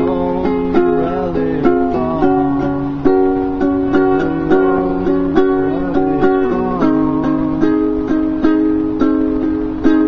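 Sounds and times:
ukulele strumming chords: 0.0s - 10.0s.

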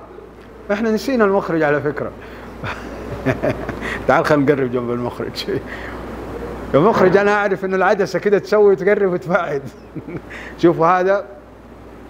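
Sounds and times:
low buzzing hum: 0.0s - 12.0s.

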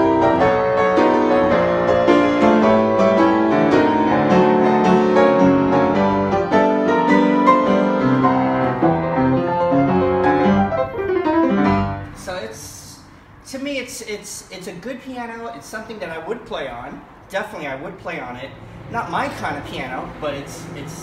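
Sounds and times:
upright piano run of notes: 0.0s - 12.3s.

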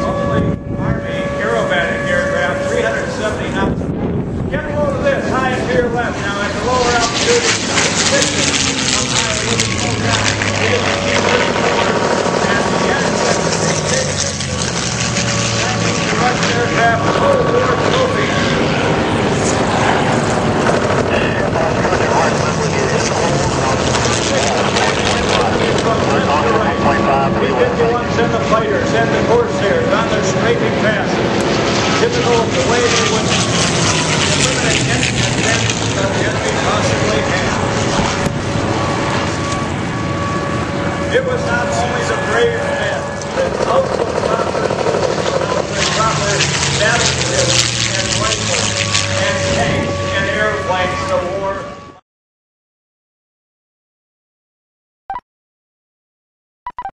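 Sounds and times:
voices: 0.0s - 3.9s, 4.5s - 51.9s
propeller planes droning overhead: 0.0s - 52.0s.

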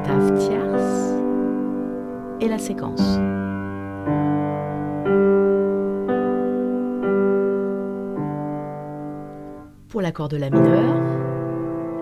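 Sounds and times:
slow piano notes: 0.0s - 12.0s.

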